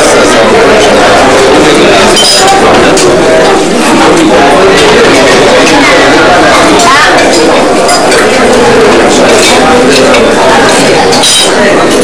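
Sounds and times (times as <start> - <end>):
indistinct chatter of voices: 0.0 - 12.0
metal tongs clinking on dishes: 11.0 - 11.6.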